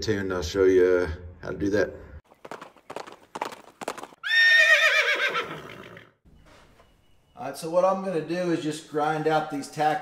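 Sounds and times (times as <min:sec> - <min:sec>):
horse hooves clip-clopping: 0:02.3 - 0:04.5
horse whinny: 0:04.2 - 0:06.2.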